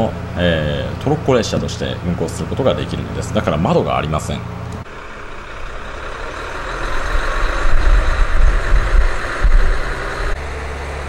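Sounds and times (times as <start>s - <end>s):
diesel train engine rumble: 0.0s - 11.0s.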